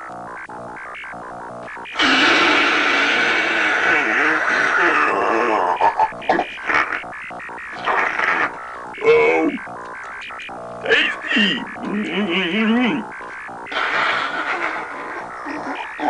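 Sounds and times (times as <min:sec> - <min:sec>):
electronic warbling noise: 0:00.0 - 0:16.0.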